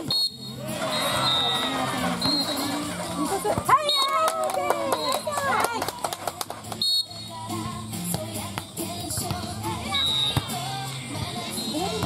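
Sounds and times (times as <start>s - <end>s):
referee's whistle blast: 0.0s - 2.5s, 9.9s - 10.4s
background music: 0.4s - 12.0s
voices: 0.6s - 7.6s.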